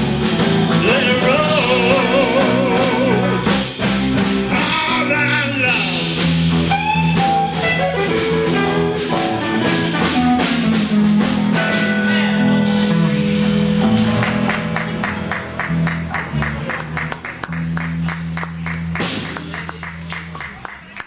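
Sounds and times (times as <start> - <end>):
live blues-rock band playing: 0.0 - 20.7.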